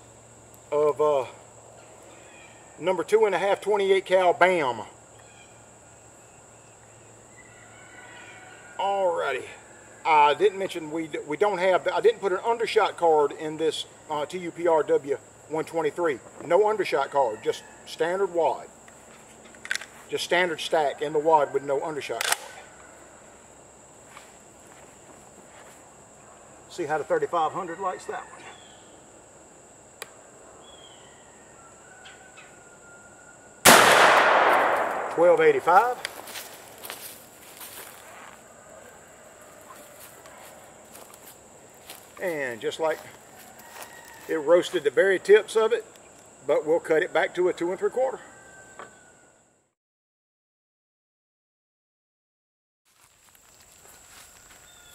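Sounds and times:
shotgun blast: 33.7 - 35.7.

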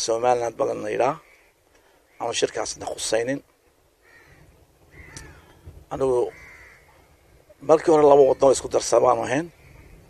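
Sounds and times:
crows cawing: 1.1 - 2.6, 4.0 - 10.0.

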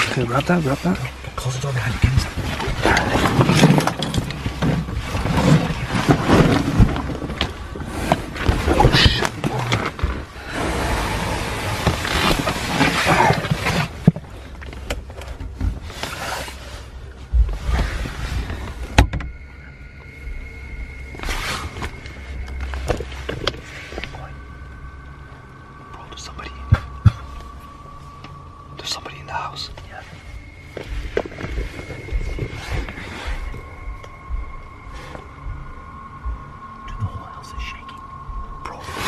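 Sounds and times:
low music drone: 0.0 - 39.0
scuffling and rustling: 0.1 - 10.4.

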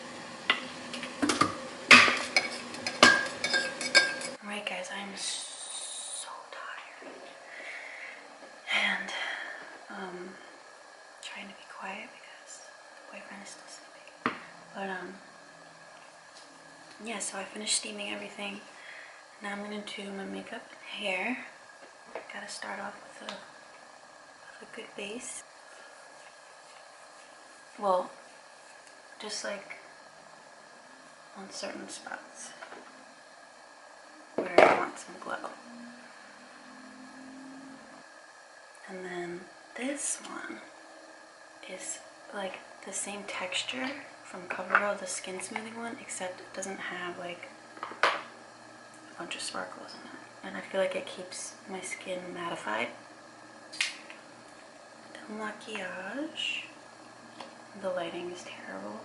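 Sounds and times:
room hiss: 0.0 - 59.0
woman whispering: 4.5 - 7.3, 11.2 - 14.0
woman humming a low note: 35.4 - 38.0.

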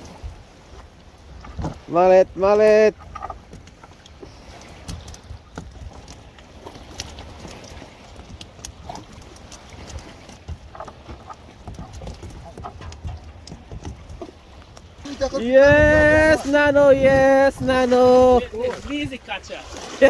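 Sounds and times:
fish flapping on wooden boards: 4.5 - 15.0.

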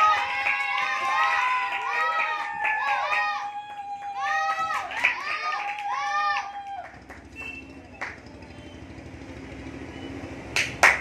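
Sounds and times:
hand clapping: 0.0 - 8.3, 10.6 - 11.0.

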